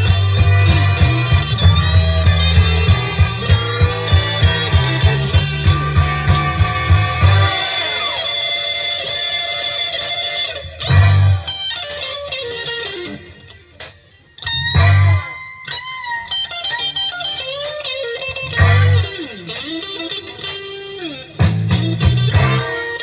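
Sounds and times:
heavy bass and drum hits: 0.0s - 8.3s, 10.9s - 11.5s, 14.8s - 15.3s, 18.6s - 19.1s, 21.4s - 22.8s
electric guitar solo: 0.0s - 23.0s.

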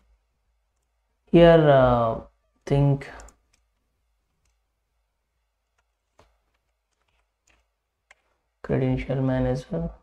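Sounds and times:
person speaking: 1.2s - 3.7s
computer clicks: 3.2s - 4.6s, 5.6s - 8.4s.

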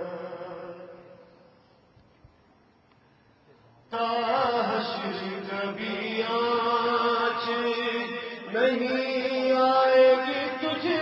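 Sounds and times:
man chanting melodically: 3.9s - 11.0s.

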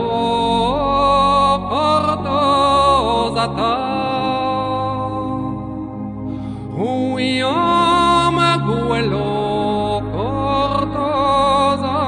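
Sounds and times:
slow music with vocals: 0.0s - 12.0s.

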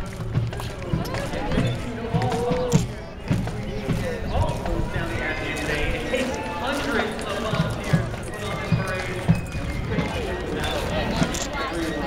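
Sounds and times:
marching shoes on pavement: 0.0s - 12.0s
spectators' voices: 0.0s - 12.0s.

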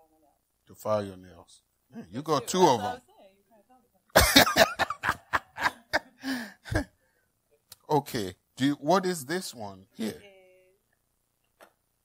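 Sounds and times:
loud cough: 4.1s - 6.0s.

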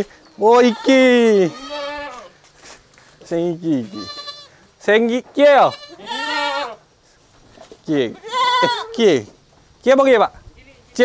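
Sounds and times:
goat bleating: 0.4s - 2.5s, 3.7s - 4.6s, 5.4s - 6.9s, 8.1s - 9.1s.

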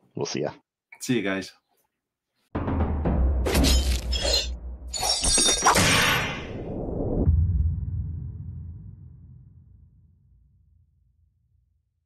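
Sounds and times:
music: 2.5s - 5.0s
deep rumble: 6.6s - 10.8s.

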